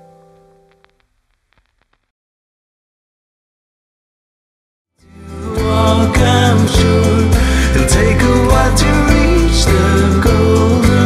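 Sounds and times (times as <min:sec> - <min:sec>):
faint clicks: 0:00.3 - 0:02.1.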